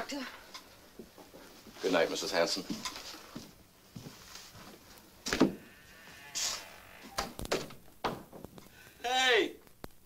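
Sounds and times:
brief high hiss: 0:06.4 - 0:06.7.

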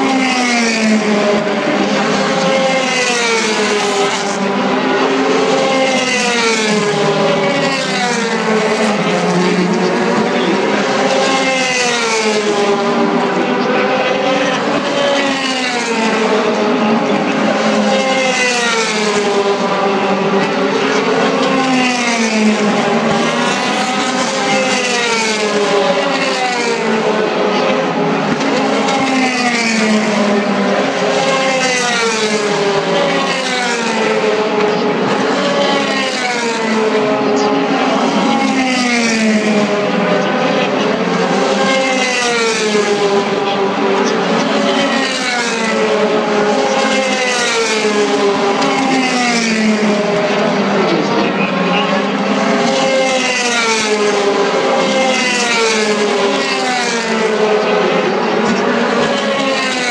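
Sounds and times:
race car engines revving past: 0:00.0 - 0:59.9.

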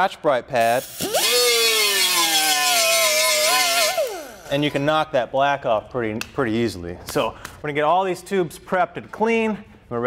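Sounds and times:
air die grinder whining: 0:01.0 - 0:04.6.

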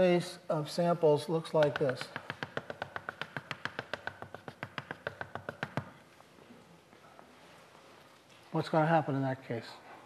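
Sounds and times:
chalk tapping on blackboard: 0:01.5 - 0:06.0.

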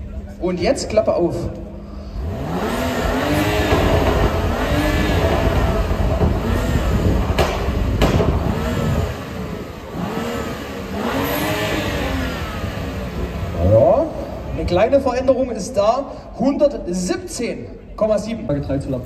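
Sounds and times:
exhaust cracks: 0:01.5 - 0:15.4
car engine revving: 0:01.9 - 0:15.4.

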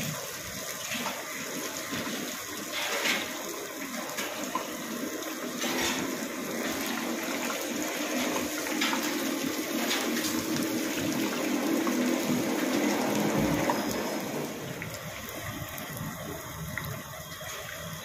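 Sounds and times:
fritters sizzling in hot oil: 0:00.0 - 0:18.0.

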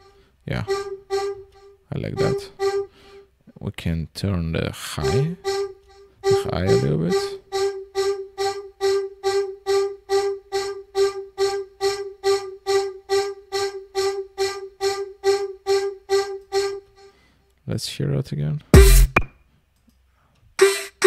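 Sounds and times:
distorted vocal synth repeated note: 0:00.5 - 0:03.2, 0:05.0 - 0:09.4.

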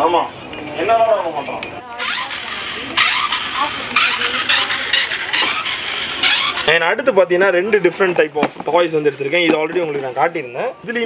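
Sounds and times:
toy car electric motor whine: 0:02.0 - 0:06.7.

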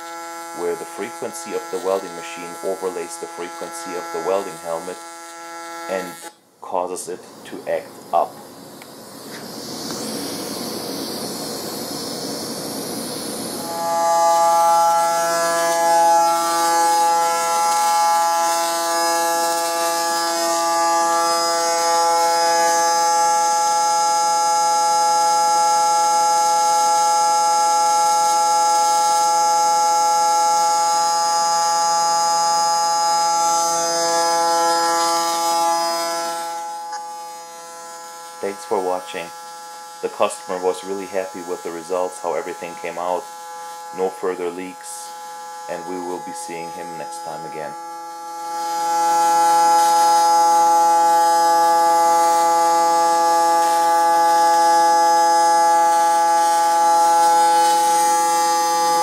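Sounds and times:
welding arc buzzing: 0:00.0 - 0:59.0.

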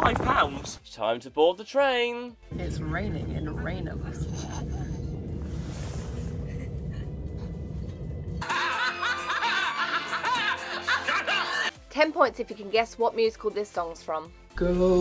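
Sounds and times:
background music: 0:00.0 - 0:15.0
train carriage rumble: 0:02.5 - 0:10.6
people laughing: 0:04.1 - 0:05.2, 0:08.4 - 0:11.7.

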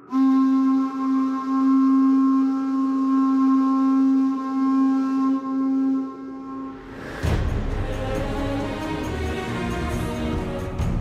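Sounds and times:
hand-held horn long low note: 0:00.0 - 0:07.0.

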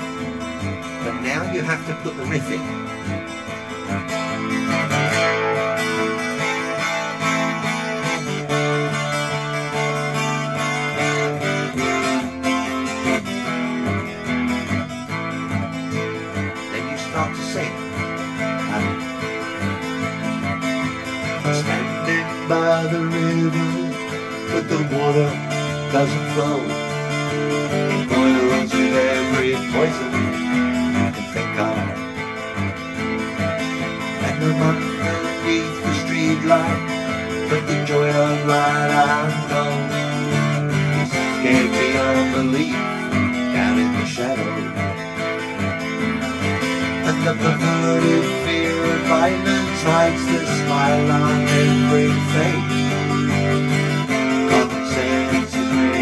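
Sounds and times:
acoustic guitar strumming and picking: 0:00.0 - 0:56.0.

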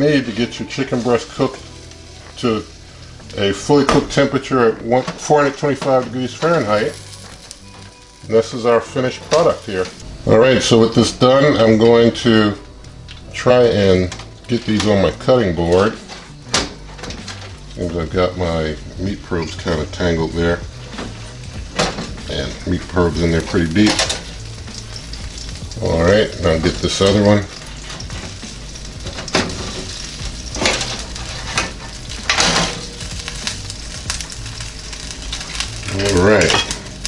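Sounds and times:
metal tongs clack: 0:35.5 - 0:36.9.

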